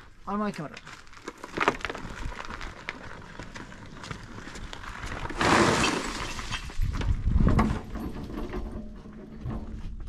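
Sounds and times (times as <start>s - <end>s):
rubble tumbling from wheelbarrow: 1.1s - 10.0s.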